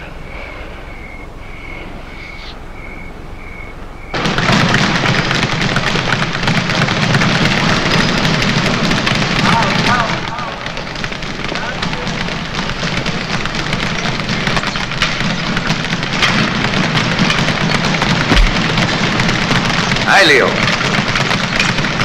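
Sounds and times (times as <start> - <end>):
faint high chirp: 0.8 - 3.8
clatter of punches and bag hits: 4.2 - 22.0.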